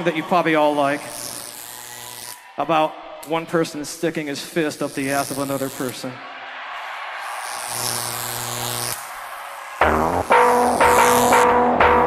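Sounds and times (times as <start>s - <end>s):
arena crowd noise: 0.0s - 1.4s, 2.4s - 12.0s
band holding low note: 9.8s - 12.0s.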